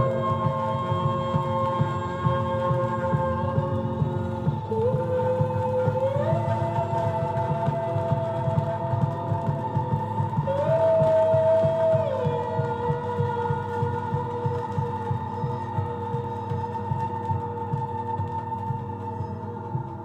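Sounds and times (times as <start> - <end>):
pulsing low beat: 0.0 - 20.0.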